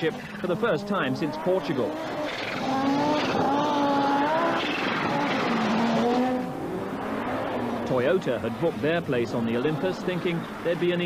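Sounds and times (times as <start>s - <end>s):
rally car engine revving high: 0.0s - 11.0s.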